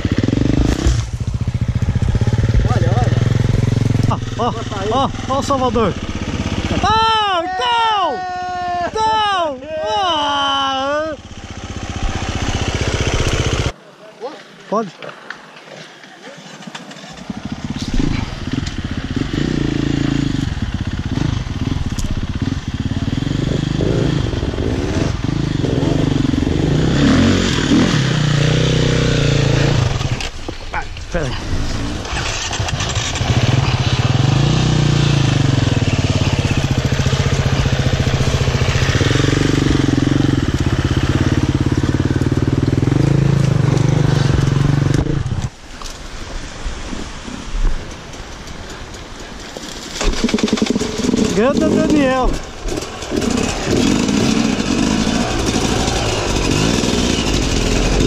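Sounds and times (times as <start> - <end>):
dirt bike engine revving: 0.0 - 7.1, 10.7 - 13.8, 16.4 - 30.4, 31.2 - 45.5, 50.0 - 58.0.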